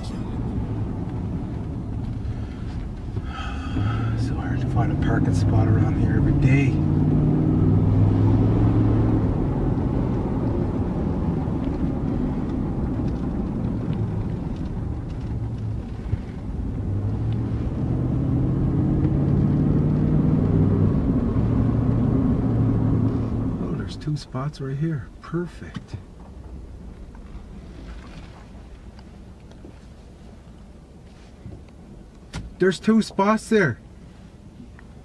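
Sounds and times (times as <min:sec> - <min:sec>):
vehicle engine drone inside cab: 0:00.0 - 0:35.0.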